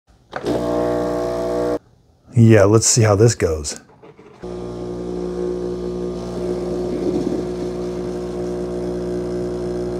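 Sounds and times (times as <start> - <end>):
espresso machine buzzing hum: 0.4 - 1.8, 4.4 - 9.9.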